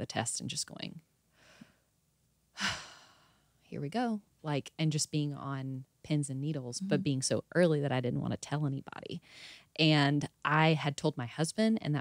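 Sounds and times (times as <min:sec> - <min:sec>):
woman sighing: 0:02.6 - 0:03.4
woman speaking: 0:03.7 - 0:09.2, 0:09.8 - 0:12.0.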